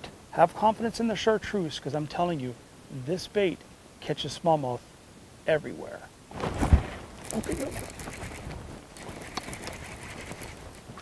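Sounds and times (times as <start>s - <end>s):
fishing reel being cranked: 7.2s - 8.4s, 9.0s - 10.6s.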